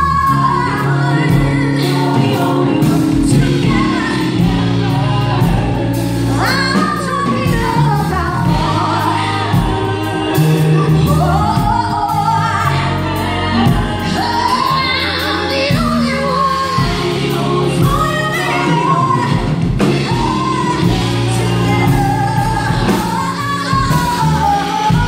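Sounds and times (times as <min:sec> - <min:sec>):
backing singers: 0:00.0 - 0:25.0
live band playing: 0:00.0 - 0:25.0
woman singing lead: 0:00.0 - 0:25.0.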